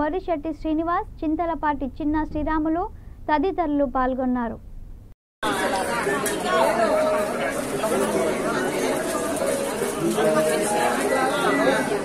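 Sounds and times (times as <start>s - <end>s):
crowd chatter: 5.4s - 12.0s.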